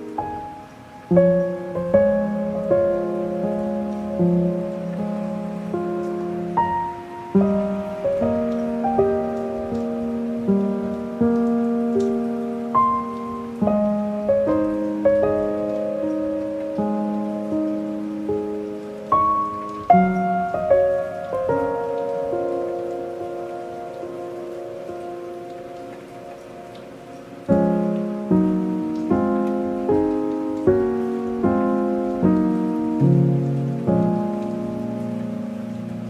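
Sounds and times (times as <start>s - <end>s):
calm piano music: 0.0s - 36.0s
soft rain: 0.0s - 36.0s.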